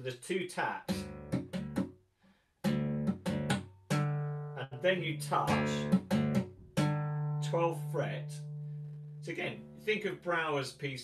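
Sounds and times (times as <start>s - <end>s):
tapped classical guitar notes: 0.8s - 1.9s, 2.6s - 10.7s.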